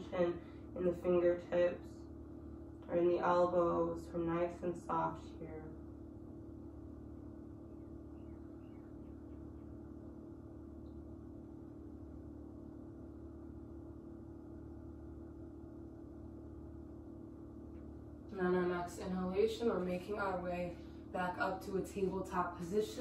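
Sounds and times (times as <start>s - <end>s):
low room tone hum: 0.0s - 23.0s.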